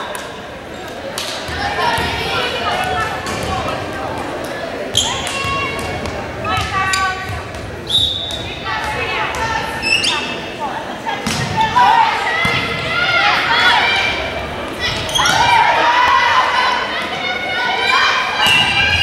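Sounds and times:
people calling out: 1.4 - 19.0
sneakers squeaking on court floor: 4.9 - 9.0, 9.8 - 10.6, 14.7 - 15.5
referee's whistle: 7.9 - 8.4.

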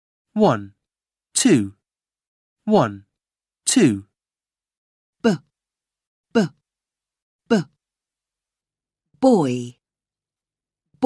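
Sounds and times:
person saying buh: 5.2 - 5.5, 6.3 - 6.6, 7.5 - 7.8.

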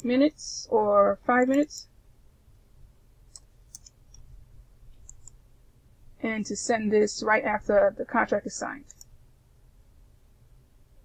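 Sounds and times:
low room hum: 0.0 - 11.0
computer mouse clicks: 3.3 - 4.3, 4.9 - 5.4, 8.8 - 9.2.

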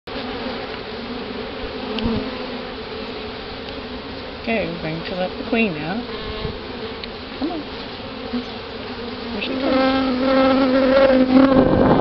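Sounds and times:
honey bees buzzing: 0.1 - 12.0.

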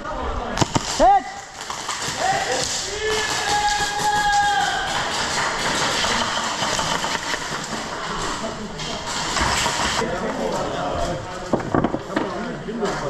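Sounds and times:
chatter of many people indoors: 4.9 - 13.0.

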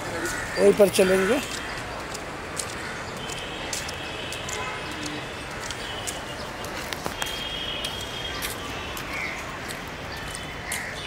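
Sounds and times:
city street background noise: 0.0 - 11.0.

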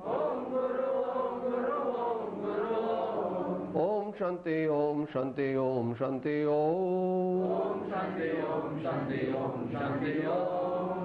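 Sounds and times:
voices chanting a prayer: 0.0 - 11.0.

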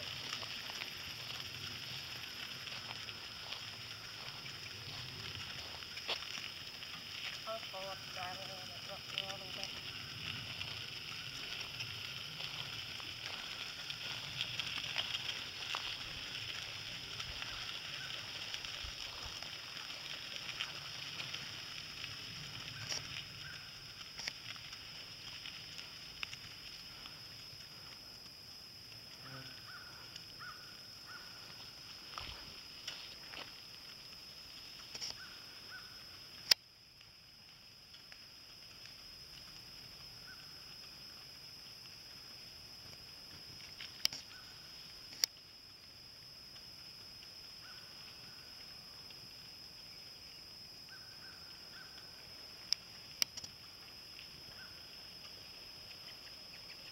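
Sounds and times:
hooves on gravel: 0.0 - 36.6
cart wheels crunching on gravel: 0.0 - 56.9
steady high hiss: 0.0 - 56.9.

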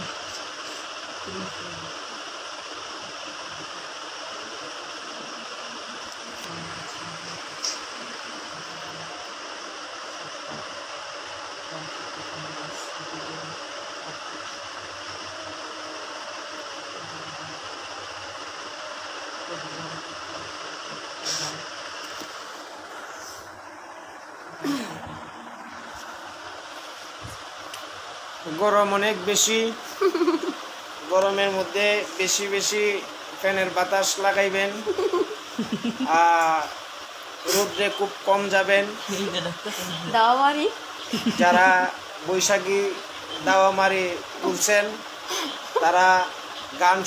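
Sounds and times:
fan air blowing on microphone: 0.0 - 47.0.

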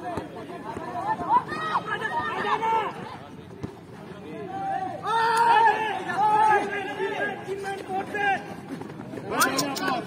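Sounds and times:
voices talking and calling out: 0.0 - 10.0.

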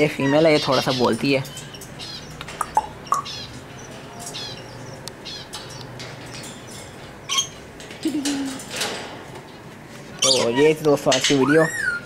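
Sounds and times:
parakeets chirping and squeaking: 0.0 - 8.7, 10.2 - 12.0.

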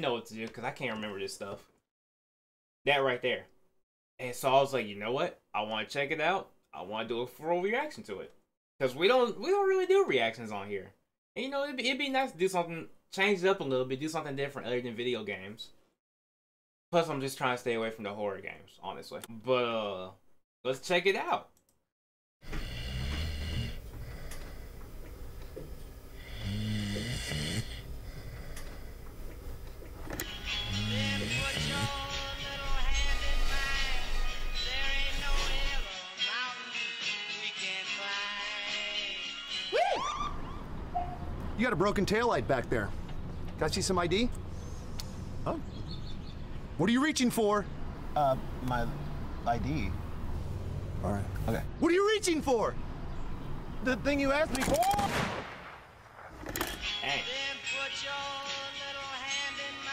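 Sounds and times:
handgun shot: 54.5 - 56.8.

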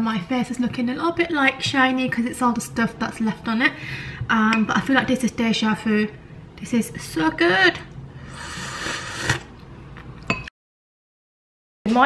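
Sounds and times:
person slurping soup: 8.2 - 9.6.

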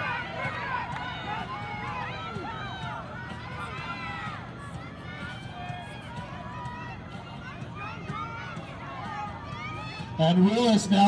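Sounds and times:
spectators shouting encouragement: 0.0 - 11.0.

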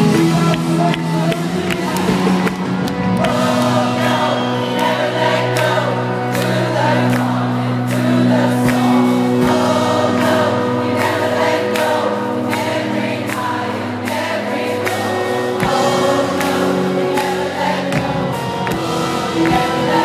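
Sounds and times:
electric guitars: 0.0 - 20.0
keyboards: 0.0 - 20.0
person singing: 0.0 - 20.0
steady drum beat: 0.0 - 20.0.

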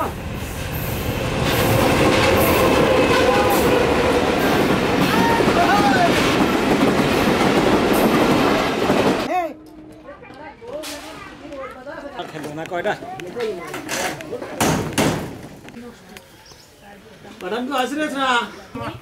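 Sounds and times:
train passing at speed: 0.0 - 9.3.

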